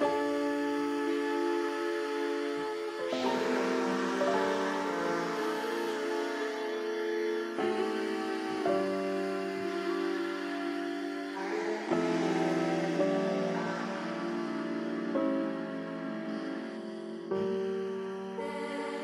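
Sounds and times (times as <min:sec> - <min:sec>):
slow soft background music: 0:00.0 - 0:19.0.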